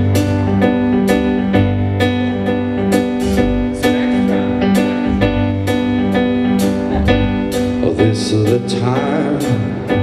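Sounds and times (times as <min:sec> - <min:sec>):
drum kit: 0:00.0 - 0:10.0
keyboard sustained chords: 0:00.0 - 0:10.0.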